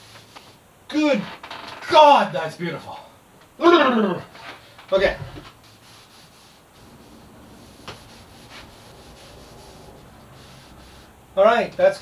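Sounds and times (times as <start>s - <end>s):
cloth rubbing on wood: 4.6s - 11.3s.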